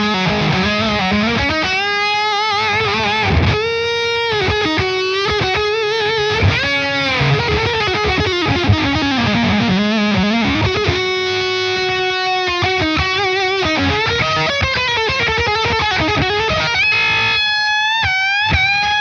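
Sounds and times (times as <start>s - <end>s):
distorted electric guitar lead: 0.0s - 19.0s.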